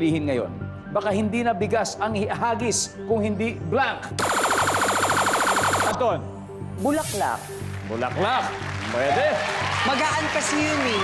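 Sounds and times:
electronic buzzer trill: 0:04.2 - 0:06.0.

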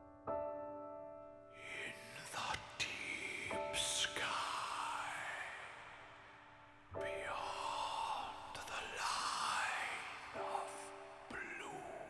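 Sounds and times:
soft piano chords: 0:00.0 - 0:12.0
airy whispery sighing sounds: 0:01.6 - 0:12.0.

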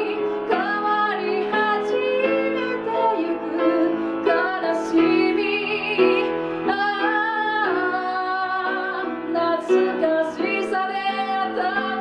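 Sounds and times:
piano accompaniment: 0:00.0 - 0:12.0
woman singing into a microphone: 0:00.0 - 0:12.0.

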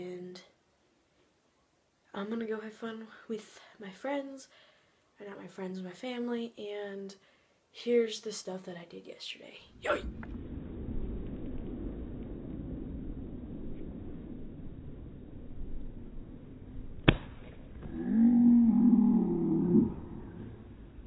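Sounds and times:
person yelling in pain: 0:09.8 - 0:10.1
low rumble: 0:09.8 - 0:21.0.

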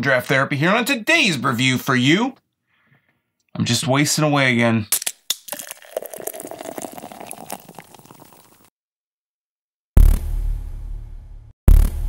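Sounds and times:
crackling fizzing liquid: 0:05.4 - 0:08.7.

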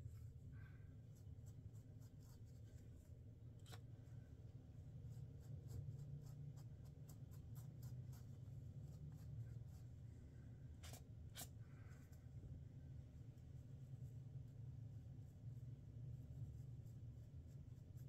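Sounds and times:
low steady hum: 0:00.0 - 0:18.0
brush scratching through beard hair: 0:00.9 - 0:03.9, 0:04.8 - 0:10.0, 0:13.0 - 0:18.0.

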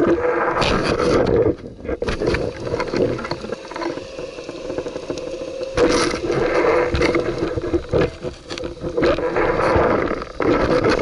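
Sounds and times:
underwater water rushing: 0:00.0 - 0:11.0.

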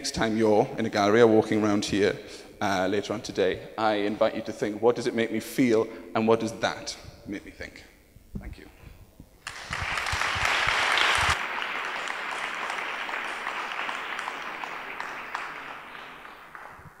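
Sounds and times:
audience applauding: 0:09.4 - 0:17.0.

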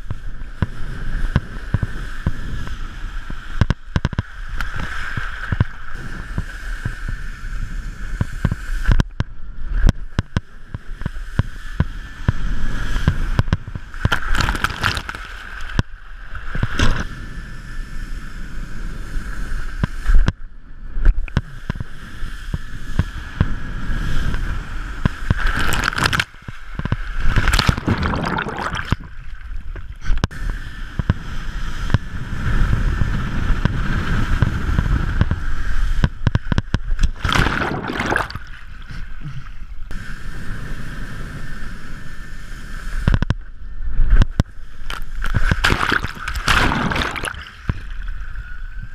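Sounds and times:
water rushing under wakeboard: 0:00.0 - 0:48.9
wind buffeting microphone: 0:21.4 - 0:48.9.

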